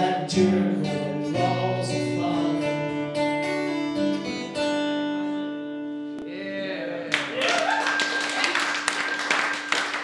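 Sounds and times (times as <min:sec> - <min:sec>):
small audience clapping: 0:07.1 - 0:10.0.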